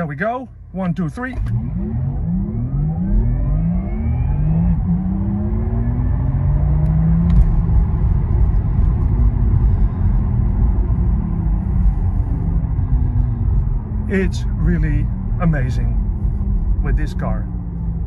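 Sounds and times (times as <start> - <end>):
road and tyre rumble: 0.0 - 18.0.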